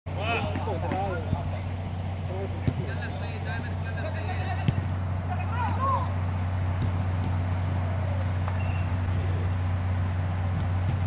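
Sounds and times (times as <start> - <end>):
distant players shouting: 0.1 - 10.8
steady low hum: 0.1 - 11.0.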